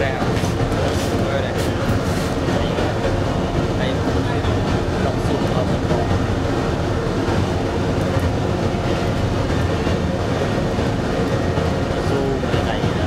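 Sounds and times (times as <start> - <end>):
furnace burner and flames rumbling: 0.0 - 13.0.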